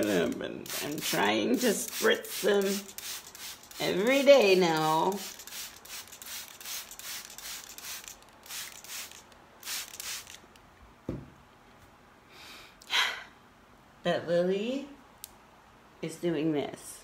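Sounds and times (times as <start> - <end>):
spray bottle squirts: 0.7 - 3.9, 4.7 - 10.4
soft thump: 11.1 - 11.4.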